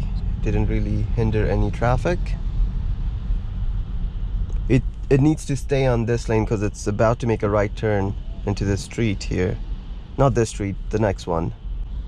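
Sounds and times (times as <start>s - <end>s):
tyres rumbling on slushy road: 4.6s - 9.6s.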